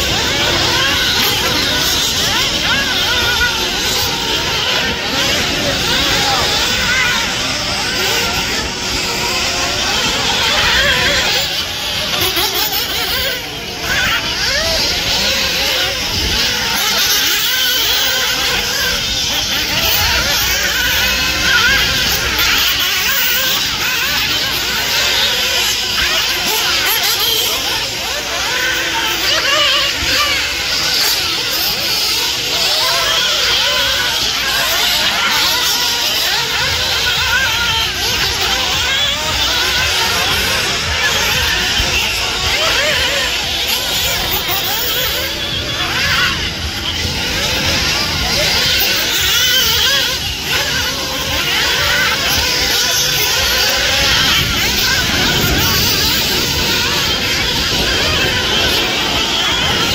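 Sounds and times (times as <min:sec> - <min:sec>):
rc buggy motors whining: 0:00.0 - 0:59.9
voices: 0:00.0 - 0:59.9.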